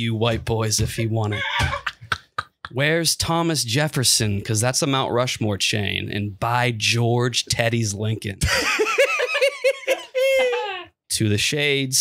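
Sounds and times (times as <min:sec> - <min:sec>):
man giggling: 0:01.3 - 0:02.8, 0:08.4 - 0:10.9.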